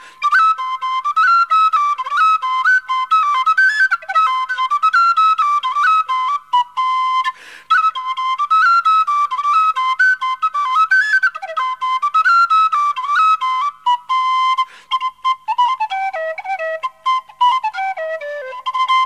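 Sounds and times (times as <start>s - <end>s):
tin whistle polka melody: 0.0s - 19.0s.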